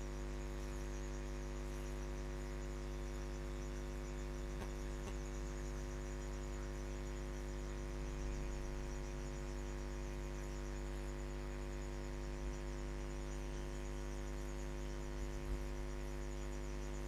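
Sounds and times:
electrical mains hum: 0.0 - 17.0
faint high pulsing whine: 0.0 - 17.0.

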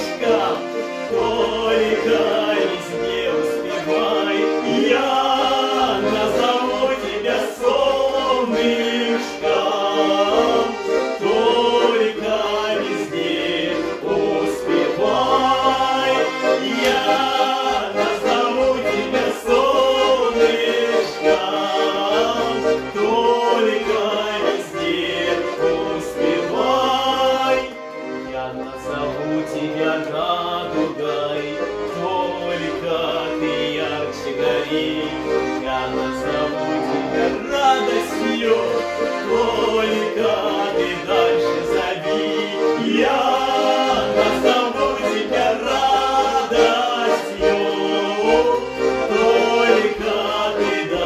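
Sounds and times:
button accordions playing: 0.0 - 51.0
men singing in harmony: 0.0 - 51.0.

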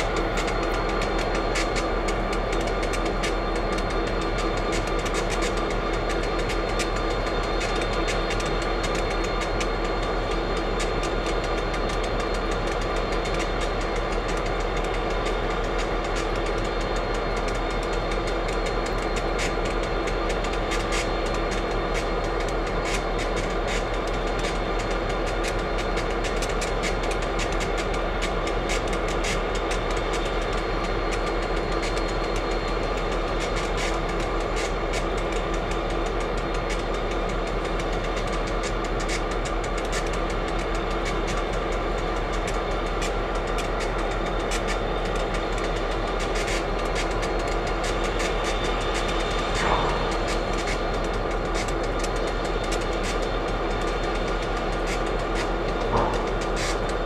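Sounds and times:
diesel locomotive idling: 0.0 - 57.0.

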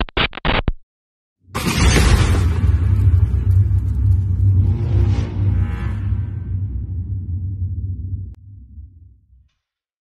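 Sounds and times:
low throbbing logo rumble: 1.6 - 9.4.

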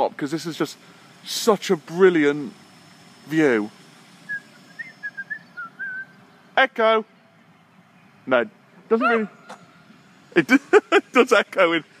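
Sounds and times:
person whistling: 4.3 - 6.1.

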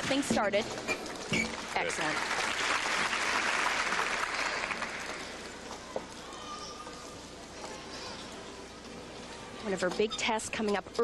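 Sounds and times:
crowd applauding: 1.6 - 5.6.

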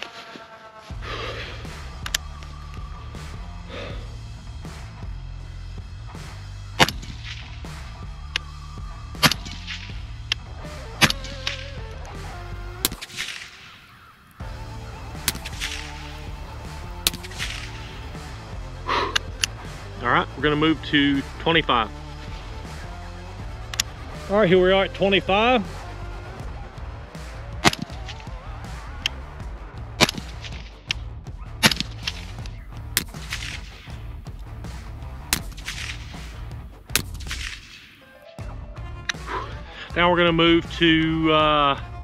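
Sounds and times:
background music: 0.0 - 42.0
suppressed rifle shots: 6.8 - 7.5, 9.2 - 10.4, 11.0 - 11.6, 12.8 - 14.1, 15.1 - 16.2, 17.0 - 18.0, 27.6 - 28.2, 30.0 - 31.0, 31.6 - 34.1, 35.2 - 38.0.

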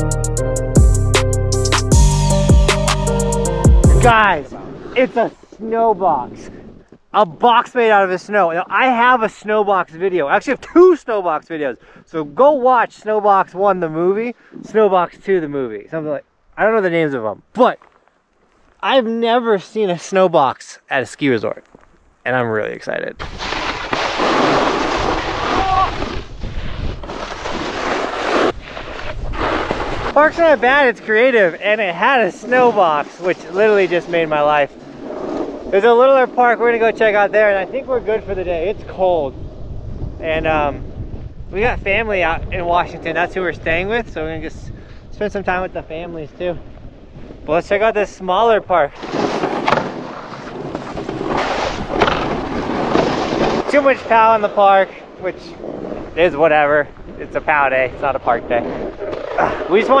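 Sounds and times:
snowboard scraping over snow: 4.0 - 6.3, 23.2 - 39.1, 48.9 - 60.0
wind rumbling on microphone: 4.0 - 7.1, 23.2 - 31.2, 32.4 - 60.0.

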